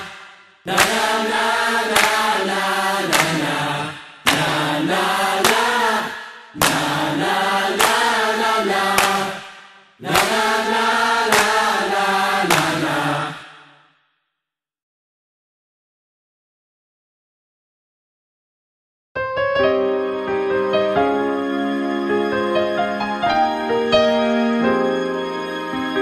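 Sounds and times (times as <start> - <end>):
pop song vocal harmonies: 0.0 - 13.8.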